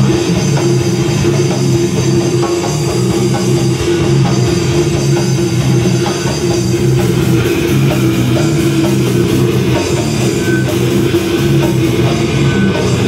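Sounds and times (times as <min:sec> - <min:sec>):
drum kit: 0:00.0 - 0:13.0
electric guitar: 0:00.0 - 0:13.0.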